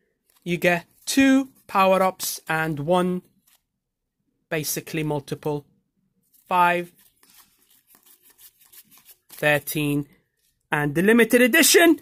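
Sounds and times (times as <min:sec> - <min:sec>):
trading cards rustling and flicking: 0:00.1 - 0:03.7, 0:06.2 - 0:10.6.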